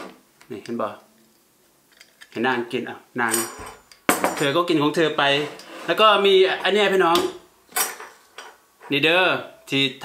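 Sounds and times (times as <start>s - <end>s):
ceramic plate scraping on table: 5.3s - 6.0s.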